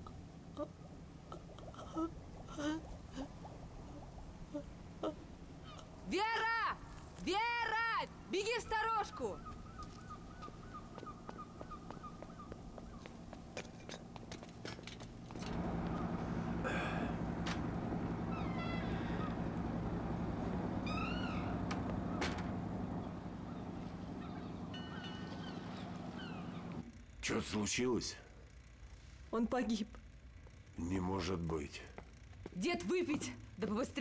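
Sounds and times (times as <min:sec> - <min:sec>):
steady low hum: 0:00.0 - 0:34.0
animal calls: 0:18.2 - 0:19.6, 0:20.8 - 0:22.4, 0:23.0 - 0:26.8.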